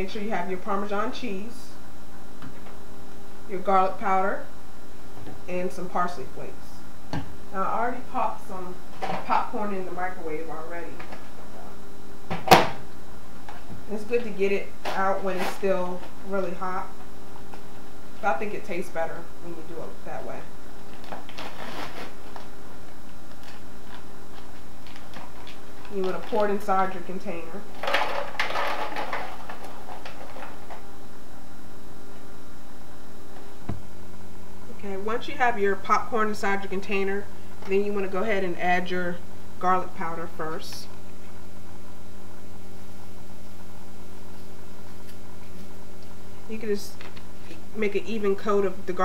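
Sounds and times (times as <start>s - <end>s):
low electrical hum: 0.0s - 49.0s.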